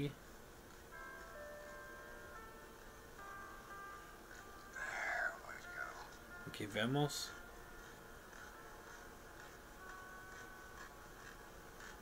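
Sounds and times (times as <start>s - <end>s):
soft sustained music chords: 0.0s - 12.0s.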